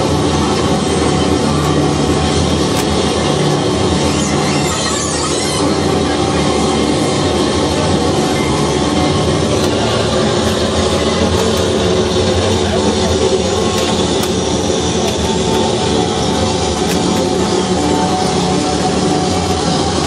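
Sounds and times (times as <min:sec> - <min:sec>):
dense noise music drone: 0:00.0 - 0:20.0.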